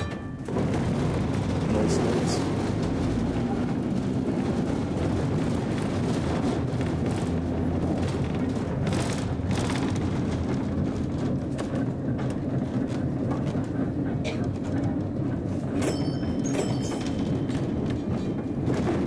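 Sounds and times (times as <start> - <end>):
streetcar wheels rumbling: 0.0 - 19.0.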